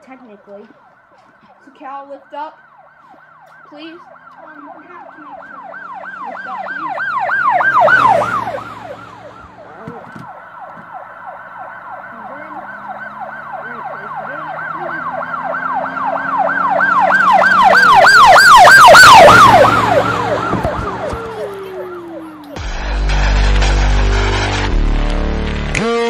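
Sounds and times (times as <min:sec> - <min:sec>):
emergency siren yelping: 0:00.2 - 0:24.7.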